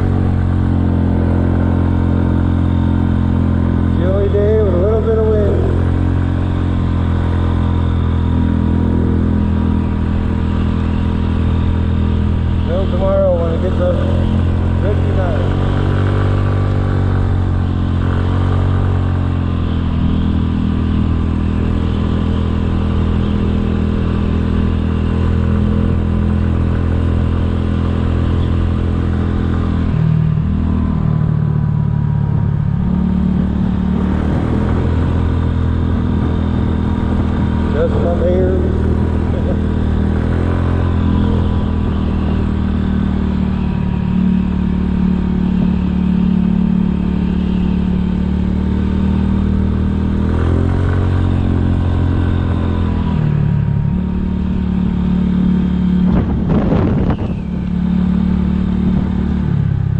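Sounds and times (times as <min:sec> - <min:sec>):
scooter engine running: 0:00.0 - 0:59.9.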